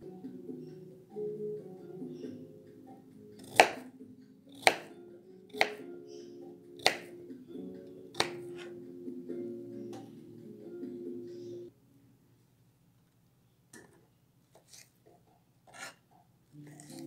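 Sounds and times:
background music: 0.0s - 12.2s, 16.5s - 17.0s
knife chopping on plastic board: 3.4s - 3.9s, 4.5s - 4.9s, 5.5s - 5.8s, 6.8s - 7.1s, 8.2s - 8.7s.

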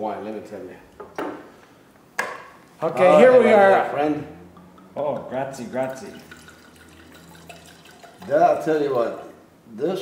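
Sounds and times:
wine pouring into glass: 5.7s - 9.4s.

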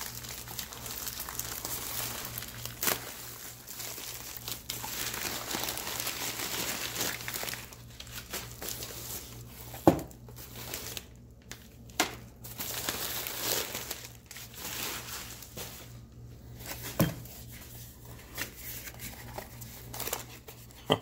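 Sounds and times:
plastic bag and paper crinkling: 0.0s - 20.7s.

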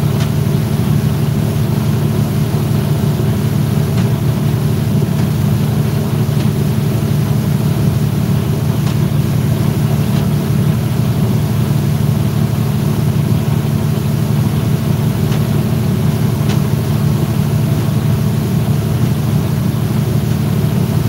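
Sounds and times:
motorboat engine droning: 0.0s - 21.0s.

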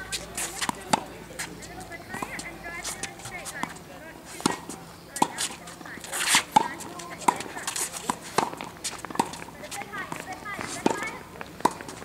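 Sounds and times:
shoe scuffing on court: 0.0s - 12.0s
tennis racket hitting ball: 0.0s - 12.0s.

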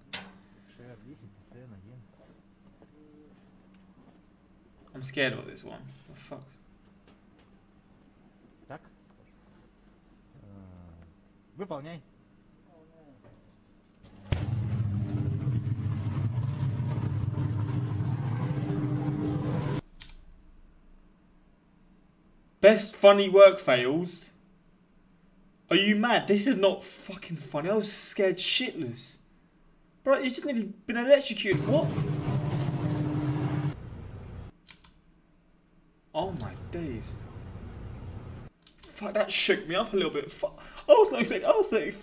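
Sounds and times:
steady electrical hum: 0.0s - 42.0s
electrical blast: 14.3s - 19.8s.

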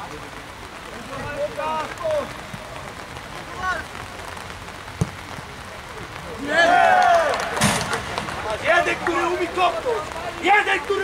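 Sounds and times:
steady rain: 0.0s - 11.0s.

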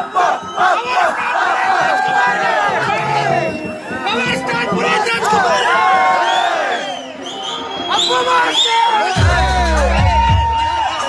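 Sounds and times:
crowd chanting: 0.0s - 10.1s
crowd shouting and cheering: 0.0s - 11.0s.

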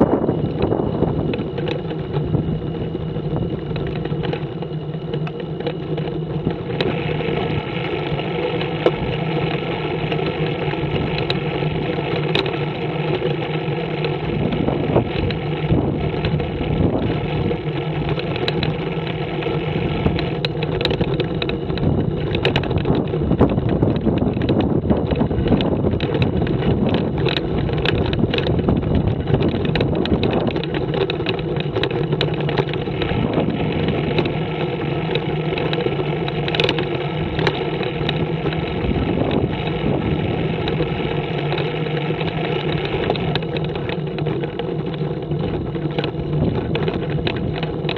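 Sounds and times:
road and wind noise: 0.0s - 47.9s
trike engine running: 0.0s - 47.9s.

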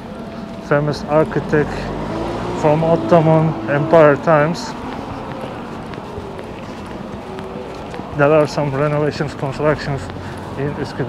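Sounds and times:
busy street noise: 0.0s - 11.0s
faint voices of passers-by: 0.0s - 11.0s.

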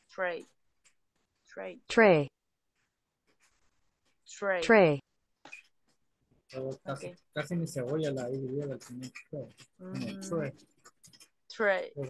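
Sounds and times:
person drawing out a vowel: 9.8s - 10.6s.

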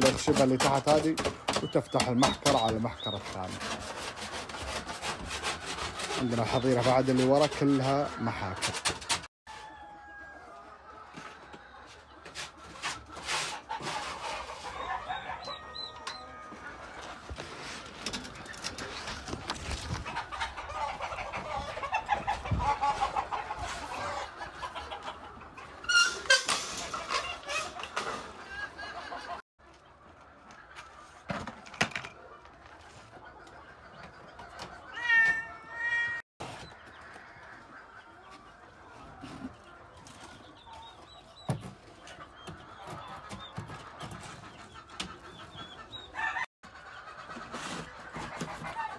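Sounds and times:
cages knocking and clattering: 0.0s - 3.7s
chickens clucking: 0.0s - 48.9s.

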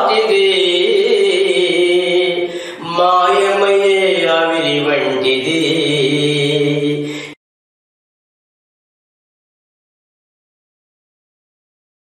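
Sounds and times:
man singing devotional song: 0.0s - 7.4s.

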